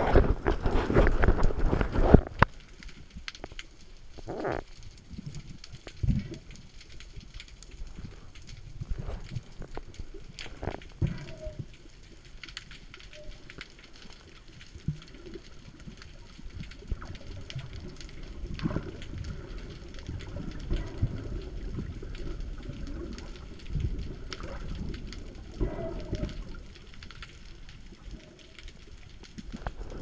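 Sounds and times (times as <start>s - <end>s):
muffled underwater rumble: 0.0s - 30.0s.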